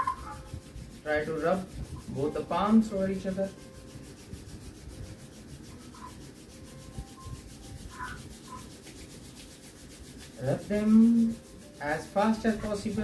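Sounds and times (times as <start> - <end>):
hands rubbing together: 0.0 - 13.0.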